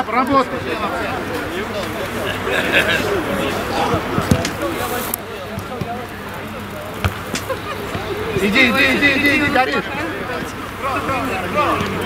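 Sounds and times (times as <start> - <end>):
players calling: 0.0 - 12.0
football being kicked: 7.0 - 8.1.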